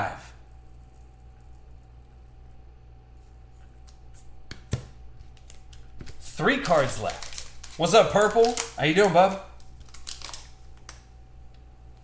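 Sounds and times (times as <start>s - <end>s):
low electrical hum: 0.0s - 12.0s
plastic pouch rustling: 5.3s - 11.1s.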